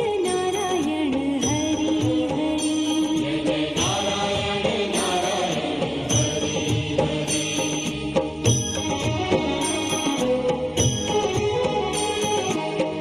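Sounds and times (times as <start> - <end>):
devotional music with chanting: 0.0 - 13.0.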